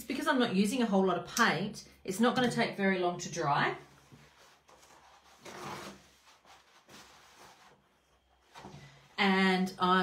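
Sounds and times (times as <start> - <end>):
soft rustle: 3.9 - 9.2.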